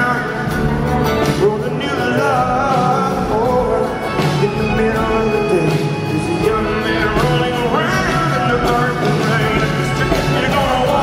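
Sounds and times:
live rock band playing: 0:00.0 - 0:11.0
man singing: 0:00.0 - 0:11.0
mandolin: 0:00.0 - 0:11.0.

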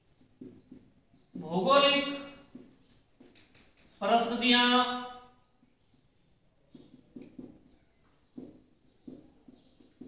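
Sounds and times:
marker writing on whiteboard: 0:00.0 - 0:04.0, 0:05.5 - 0:10.0.

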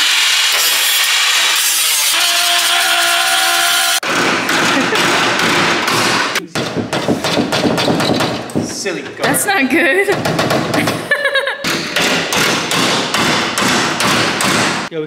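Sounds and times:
power cutting tool buzzing: 0:00.0 - 0:04.0.

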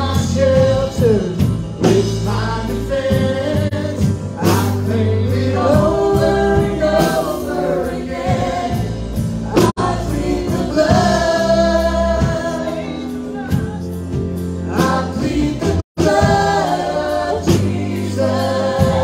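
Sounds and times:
gospel band playing: 0:00.0 - 0:19.0.

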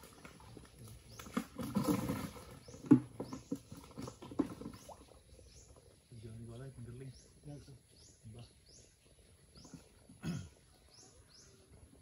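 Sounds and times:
fish pattering in plastic basin: 0:00.0 - 0:05.8.

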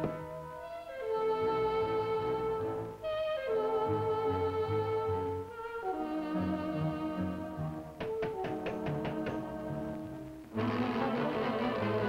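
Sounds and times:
orchestral cartoon music: 0:00.0 - 0:12.0.

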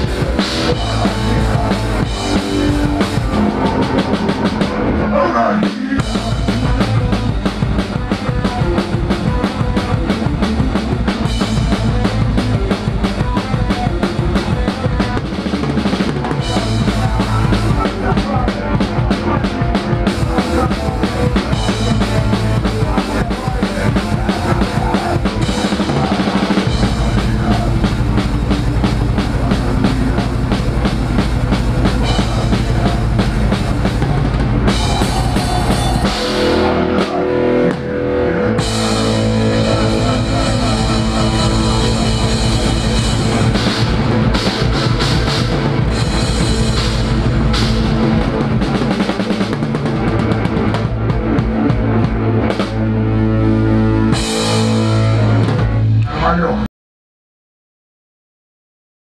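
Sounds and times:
drum kit played hard: 0:00.0 - 0:56.0
punk rock band playing: 0:00.0 - 0:56.4.

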